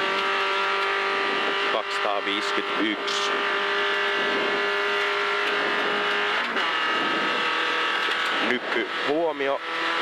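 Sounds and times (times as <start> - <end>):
gear change: 0.0 - 10.0
rally car engine at high revs: 0.0 - 10.0.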